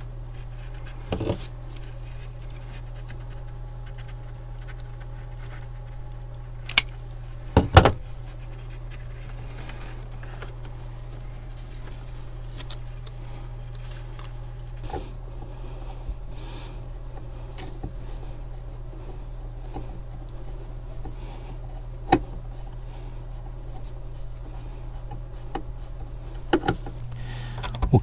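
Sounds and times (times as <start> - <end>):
handling of wire: 0.0 - 27.9
steady low hum: 0.0 - 28.0.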